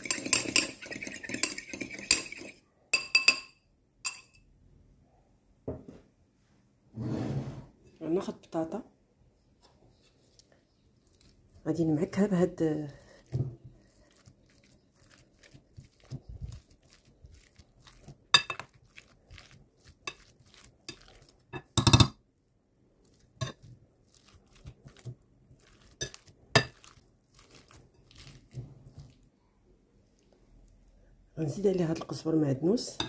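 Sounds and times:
potatoes being mashed: 9.7 - 22.2, 22.9 - 29.3.

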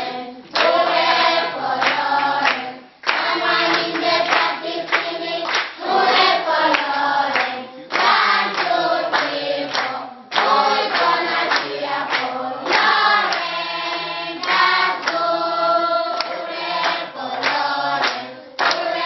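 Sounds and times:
children singing in chorus: 0.0 - 19.0
hand claps: 0.5 - 0.9, 1.8 - 15.3, 16.2 - 19.0.

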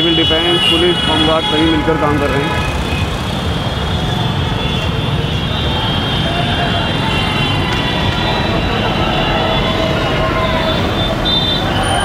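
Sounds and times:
car engines: 0.0 - 12.0
motorbike engines: 0.0 - 12.0.

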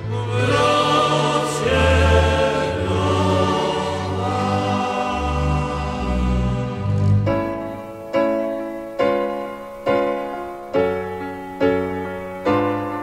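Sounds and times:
choir-like chords: 0.0 - 10.7.

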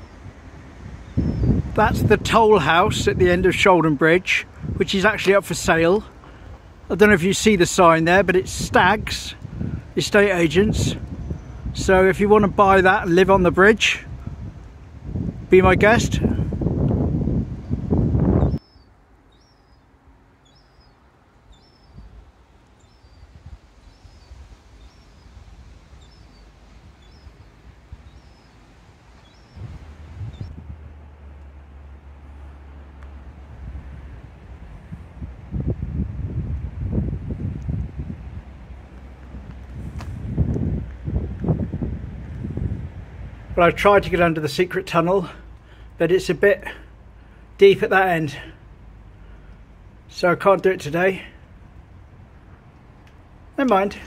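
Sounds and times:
wind rumble on microphone: 0.0 - 18.9, 20.5 - 44.7
small bird chirping: 1.0 - 1.6, 18.4 - 30.5.

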